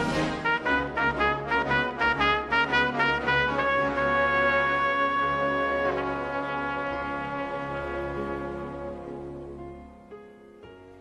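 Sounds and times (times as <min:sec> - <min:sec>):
trumpet playing slow melody: 0:00.0 - 0:09.6.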